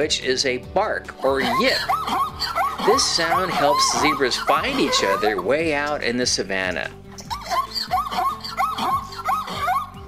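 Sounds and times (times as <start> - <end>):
soft background music: 0.0 - 10.0
zebra barking: 1.2 - 5.6, 7.2 - 10.0.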